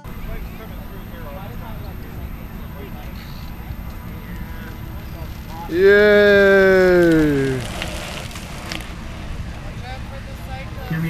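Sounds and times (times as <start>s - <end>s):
faint voices: 0.0s - 11.0s
steady low rumble: 0.0s - 11.0s
person shouting yeah: 5.7s - 7.6s.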